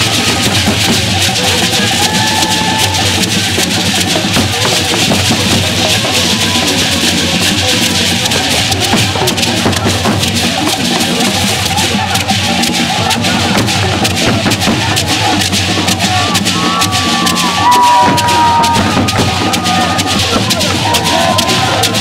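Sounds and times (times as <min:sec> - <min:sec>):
gourd rattles shaken: 0:00.0 - 0:22.0.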